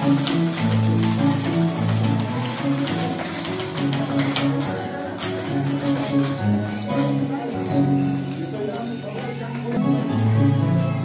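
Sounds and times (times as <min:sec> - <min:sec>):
high jingling bells: 0:00.0 - 0:11.0.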